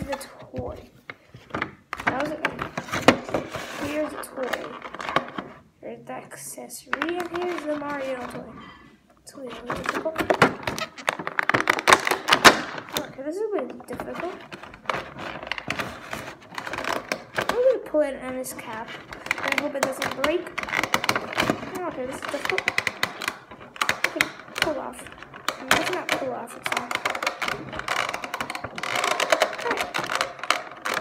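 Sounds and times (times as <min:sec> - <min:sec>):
plastic packaging crackling: 0:09.4 - 0:31.0.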